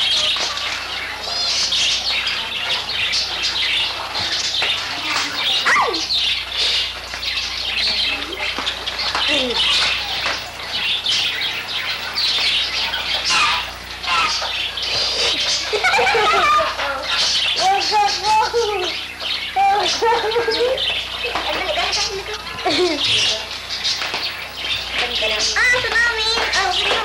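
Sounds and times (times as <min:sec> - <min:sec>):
kittens mewing: 0:05.0 - 0:07.0, 0:09.3 - 0:16.7.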